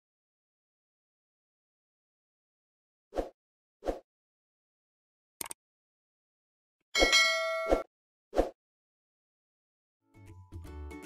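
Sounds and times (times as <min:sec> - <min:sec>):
bell chime ding: 0:07.0 - 0:07.8.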